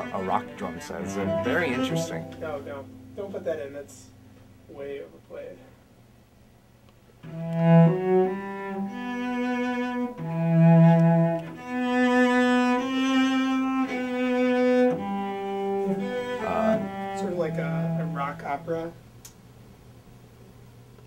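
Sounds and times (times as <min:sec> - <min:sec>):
cello bowing held notes: 0:00.0 - 0:05.8, 0:07.2 - 0:19.0.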